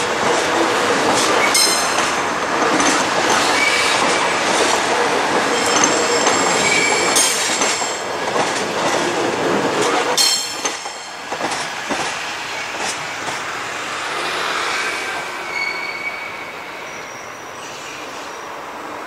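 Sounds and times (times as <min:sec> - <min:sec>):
rail joint clicks: 0:00.0 - 0:14.3
train wheels rumbling on rail: 0:00.0 - 0:19.0
high-pitched wheel squeal: 0:05.5 - 0:07.3, 0:15.4 - 0:18.5.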